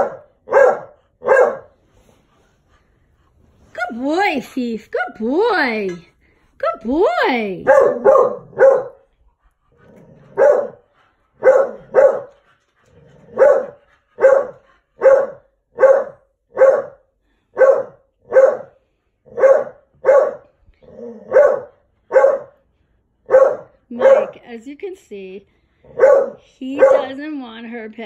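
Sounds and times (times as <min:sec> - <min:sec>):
dog barking: 0:00.0 - 0:01.7, 0:07.6 - 0:09.0, 0:10.3 - 0:10.8, 0:11.4 - 0:12.4, 0:13.3 - 0:17.0, 0:17.6 - 0:20.5, 0:21.3 - 0:22.6, 0:23.3 - 0:24.4, 0:25.9 - 0:27.2.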